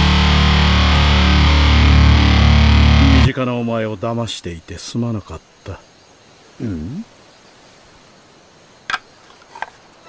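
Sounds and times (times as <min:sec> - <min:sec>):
distorted electric guitar and bass chord: 0:00.0 - 0:03.4.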